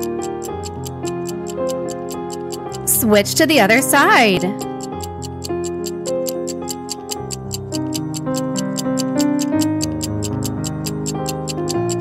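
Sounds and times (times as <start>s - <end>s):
countdown timer ticking: 0.0s - 12.0s
soft keyboard music: 0.0s - 12.0s.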